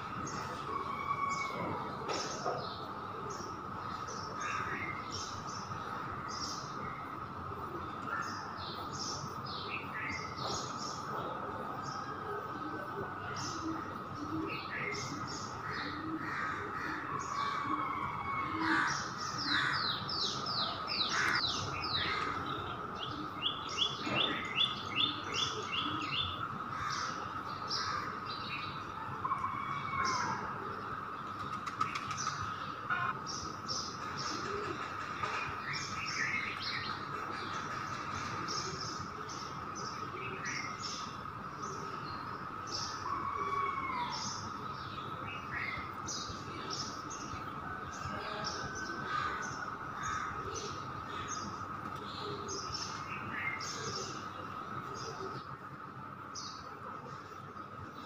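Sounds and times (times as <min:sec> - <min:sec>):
birds chirping: 0:00.0 - 0:58.0.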